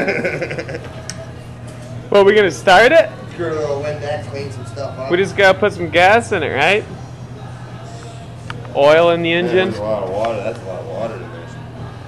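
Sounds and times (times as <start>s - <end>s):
man laughing: 0.0s - 1.0s
low room hum: 0.0s - 12.0s.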